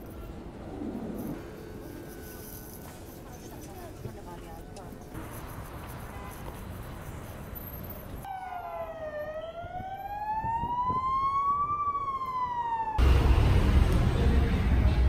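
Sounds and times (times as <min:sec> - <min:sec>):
siren wailing: 0:08.3 - 0:13.2.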